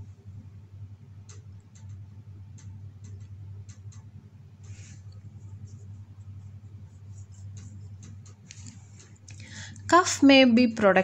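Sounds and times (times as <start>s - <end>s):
low steady hum: 0.0s - 11.0s
small clicks: 1.2s - 5.3s.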